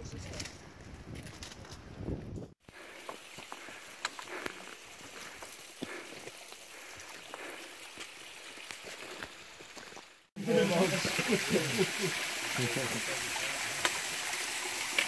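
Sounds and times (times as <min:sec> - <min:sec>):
footsteps on rocks: 0:00.3 - 0:10.1.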